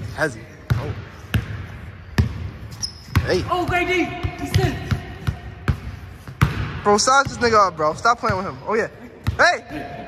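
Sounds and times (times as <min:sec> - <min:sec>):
shoe squeak: 0:02.0 - 0:03.6
basketball bouncing on hardwood: 0:03.1 - 0:07.6.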